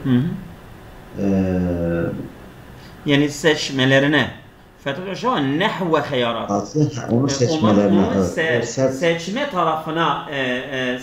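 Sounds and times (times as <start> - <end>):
man's drawn-out hesitation sound: 6.4 - 9.1.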